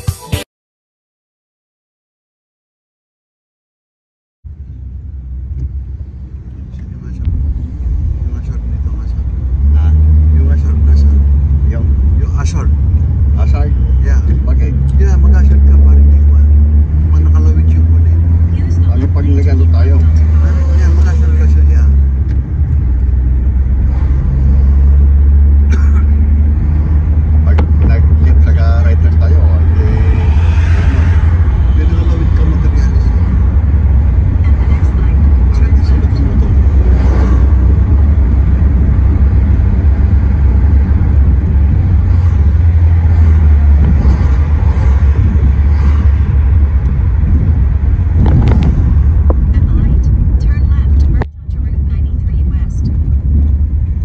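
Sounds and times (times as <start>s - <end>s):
car road and engine rumble: 4.5s - 54.0s.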